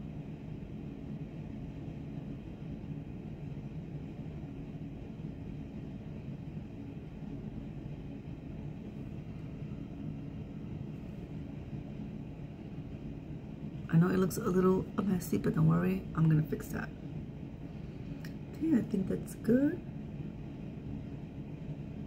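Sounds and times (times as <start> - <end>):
faint hum: 0.0 - 22.0
low background rumble: 0.0 - 22.0.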